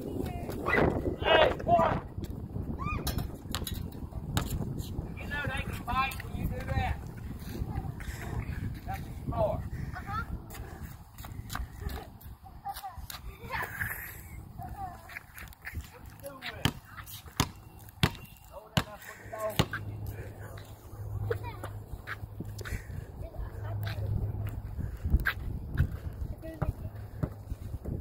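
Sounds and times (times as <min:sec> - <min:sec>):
children's voices: 0:07.5 - 0:08.6, 0:09.7 - 0:11.0, 0:11.7 - 0:16.2, 0:21.1 - 0:24.5, 0:26.0 - 0:27.2
basketball bouncing: 0:16.6 - 0:19.8.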